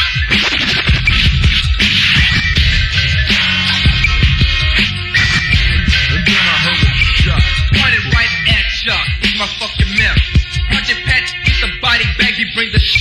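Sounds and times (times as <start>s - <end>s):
heavy pulsing bass: 0.0s - 13.0s
man rapping over a beat: 5.7s - 13.0s.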